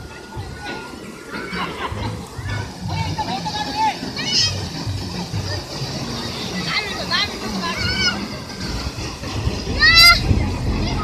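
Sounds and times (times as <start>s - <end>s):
surf rushing on beach: 1.4s - 11.0s.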